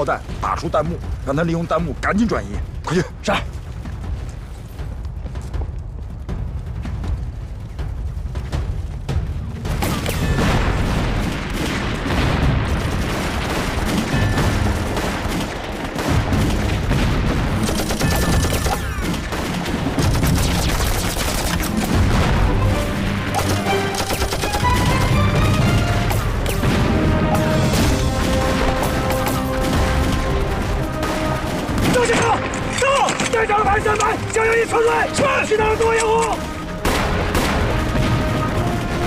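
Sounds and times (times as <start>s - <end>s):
explosions: 9.0s - 32.5s, 36.5s - 39.0s
rifle and machine-gun fire: 9.7s - 33.3s, 35.8s - 39.0s.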